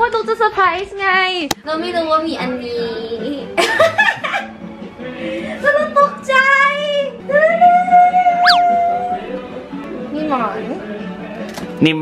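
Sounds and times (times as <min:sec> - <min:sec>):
music with high singing voice: 0:08.0 - 0:11.7.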